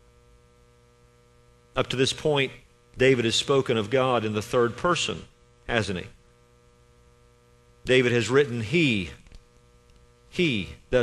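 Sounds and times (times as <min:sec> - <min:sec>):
faint mains hum: 0:00.0 - 0:11.0
man speaking: 0:01.8 - 0:06.2, 0:07.9 - 0:09.2, 0:10.3 - 0:11.0.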